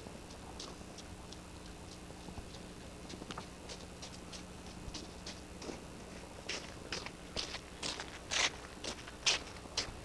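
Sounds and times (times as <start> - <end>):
footsteps crunching on frozen ground: 0.2 - 10.0.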